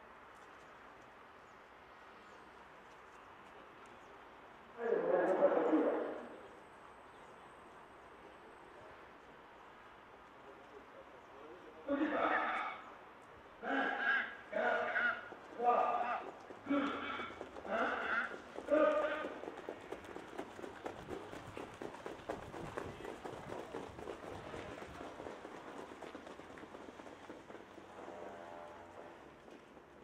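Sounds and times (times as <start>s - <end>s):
hoofbeats of trotting horses: 0.2s - 5.4s, 12.0s - 30.0s
man talking: 10.6s - 12.6s, 18.7s - 19.3s.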